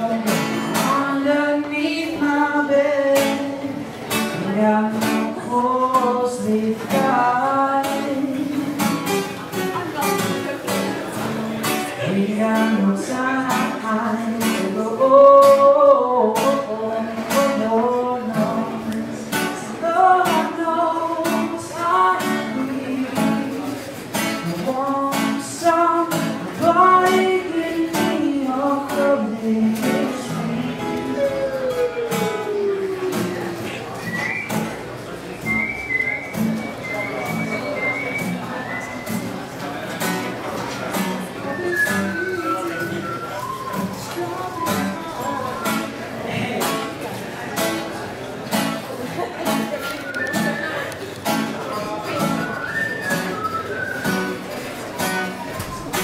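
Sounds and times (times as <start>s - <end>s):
man singing: 0.0s - 9.2s, 11.6s - 33.6s, 41.4s - 46.7s
strummed acoustic guitar: 0.0s - 56.0s.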